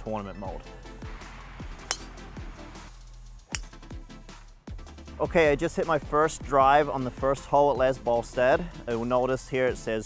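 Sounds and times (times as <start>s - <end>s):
background music: 0.0s - 10.0s
golf club striking ball: 1.7s - 2.3s, 3.5s - 3.9s.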